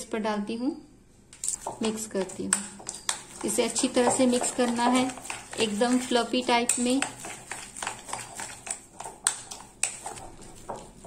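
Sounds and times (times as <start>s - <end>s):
spoon stirring thick batter: 1.3s - 11.0s
spoon tapping glass bowl: 1.6s - 5.3s.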